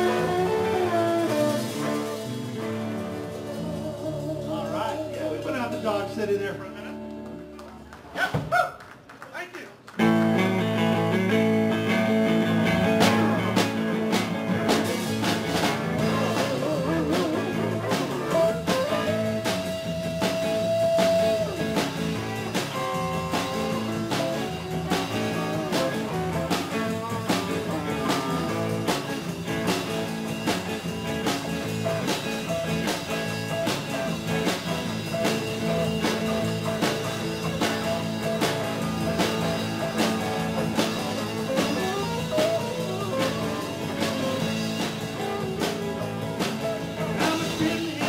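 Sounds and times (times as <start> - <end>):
live band playing: 0.0 - 8.5, 9.8 - 48.0.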